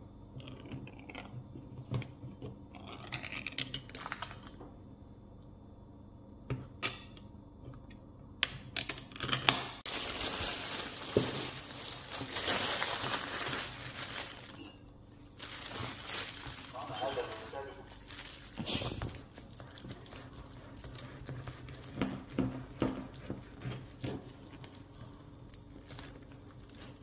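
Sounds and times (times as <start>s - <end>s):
plastic bag crinkling: 9.8s - 27.0s.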